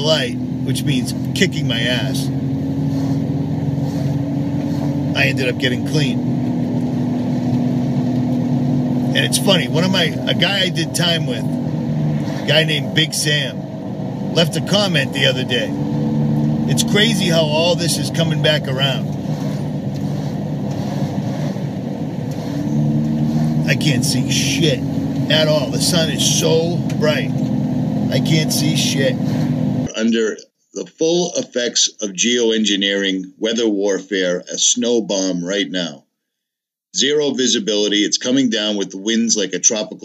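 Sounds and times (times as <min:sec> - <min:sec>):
vehicle engine and road noise: 0:00.0 - 0:29.9.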